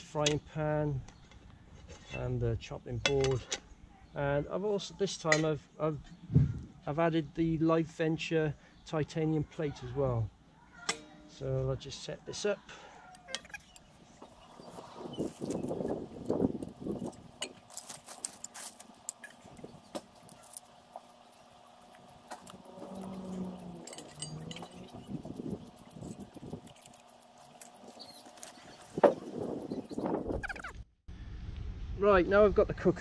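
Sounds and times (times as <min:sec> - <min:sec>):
metal cookware clinking: 0:23.8 - 0:25.0.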